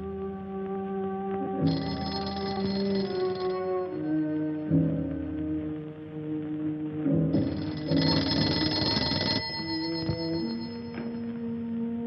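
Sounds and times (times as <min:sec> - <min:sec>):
film background score: 0:00.0 - 0:12.0
telephone bell ringing: 0:01.6 - 0:04.6, 0:07.4 - 0:11.4.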